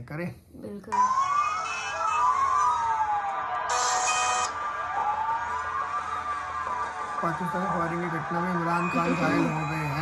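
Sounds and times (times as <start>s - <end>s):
emergency siren wailing: 1.0s - 10.0s.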